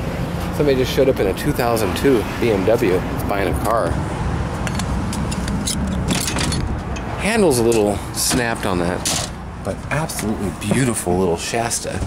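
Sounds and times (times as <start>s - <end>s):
steady low rumble: 3.2s - 8.2s.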